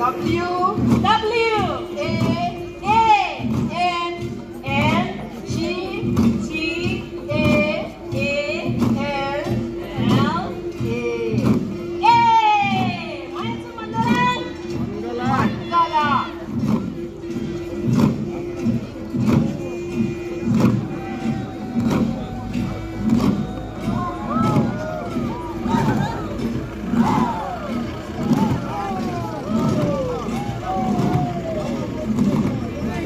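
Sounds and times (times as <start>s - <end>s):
long drums beaten in rhythm: 0.0s - 33.0s
voices crying out: 17.6s - 33.0s.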